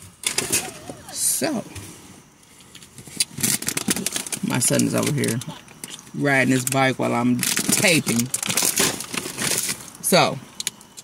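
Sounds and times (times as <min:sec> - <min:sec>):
packaging bag crinkling: 0:03.2 - 0:04.4, 0:07.4 - 0:10.0.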